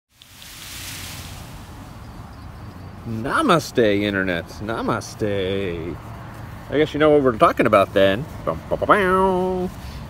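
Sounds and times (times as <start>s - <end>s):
outdoor background hiss: 0.1s - 10.0s.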